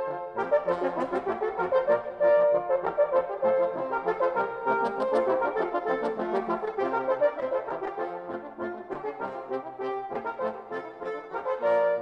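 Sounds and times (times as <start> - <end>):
brass instruments playing lively music: 0.0 - 12.0.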